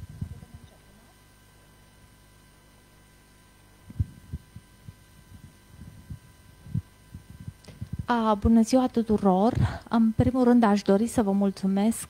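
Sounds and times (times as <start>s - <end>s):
faint electrical hum: 0.0s - 12.0s
microphone handling thumps: 3.8s - 8.6s, 9.4s - 10.4s.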